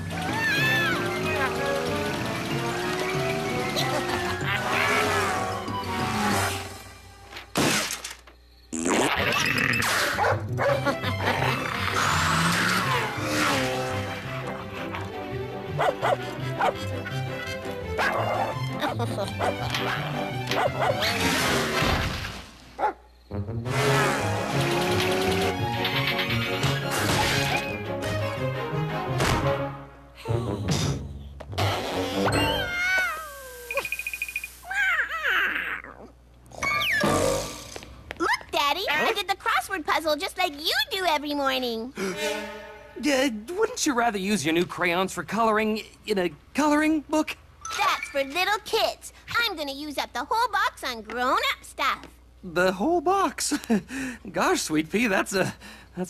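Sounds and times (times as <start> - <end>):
cartoon cat screeching: 0.1 - 1.5, 32.2 - 33.7, 34.6 - 37.2
cartoon dog barking and snarling: 3.6 - 6.6, 9.1 - 14.0, 15.7 - 21.8.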